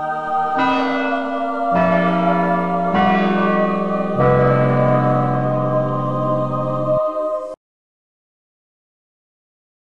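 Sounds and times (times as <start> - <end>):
deep bell notes ringing: 0.5 - 7.1.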